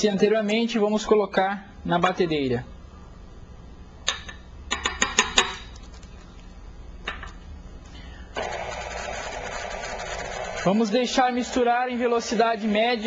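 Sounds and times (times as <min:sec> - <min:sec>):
sharp clicks and knocks: 0:04.1 - 0:05.9
stand mixer running: 0:08.4 - 0:13.0.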